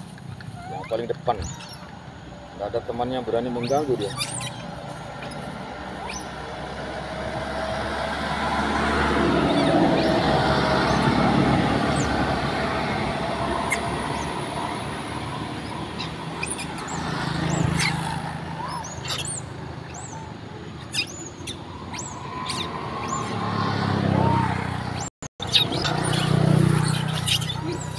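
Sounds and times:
vehicle passing: 2.1 - 27.9.

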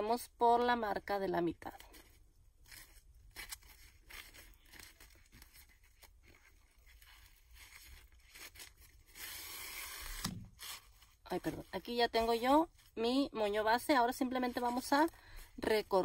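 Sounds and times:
ribbon rustling: 1.5 - 16.0
thread pulled through ribbon: 1.6 - 13.0.

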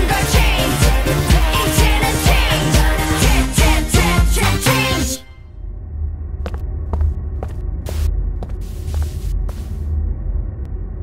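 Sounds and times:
low droning hum: 5.3 - 11.0
footsteps on hard street: 6.4 - 9.8.

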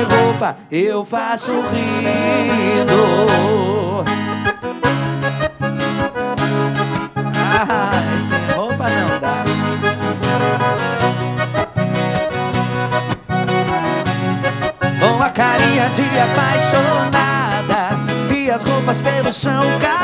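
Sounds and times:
piano accordion melody: 0.0 - 0.6, 1.2 - 20.0
strummed acoustic guitar: 0.0 - 0.6, 1.4 - 20.0.

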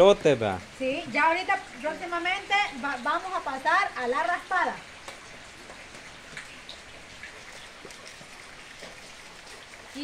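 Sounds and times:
light rain falling: 0.0 - 10.0
water drips: 0.0 - 10.0.

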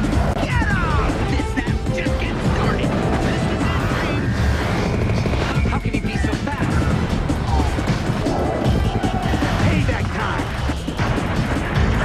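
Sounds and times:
action soundtrack music: 0.0 - 12.0
heavy low mechanical sound effects: 0.0 - 12.0.

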